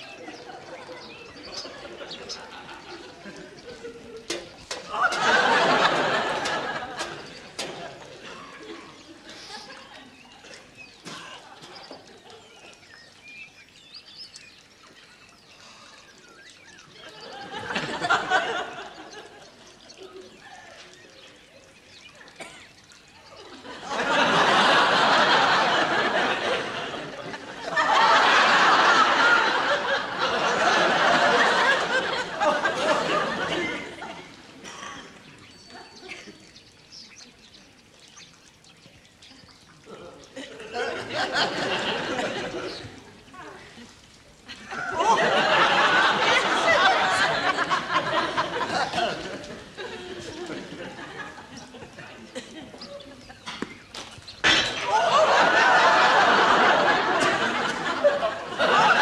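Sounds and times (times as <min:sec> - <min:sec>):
birds chirping and twittering: 0:00.0 - 0:59.0
faint outdoor hiss: 0:00.0 - 0:59.0.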